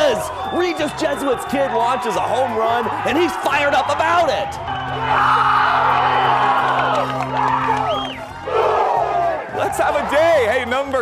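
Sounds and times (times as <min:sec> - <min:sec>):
crowd shouting and cheering: 0:00.0 - 0:11.0
music with low tones: 0:00.0 - 0:11.0.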